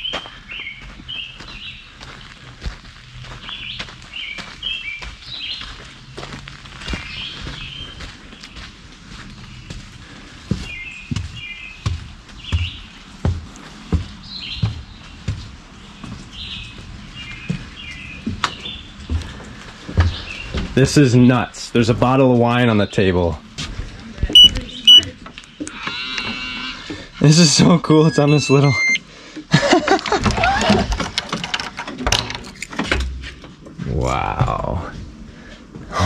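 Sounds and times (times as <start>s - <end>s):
footsteps on wooden steps: 0.0s - 20.9s, 23.5s - 25.4s
songbird chirping: 0.0s - 23.0s, 24.4s - 29.2s.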